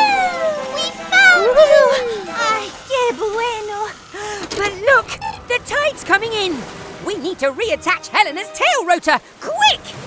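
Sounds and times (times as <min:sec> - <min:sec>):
cartoon voices sliding in pitch: 0:00.0 - 0:02.7.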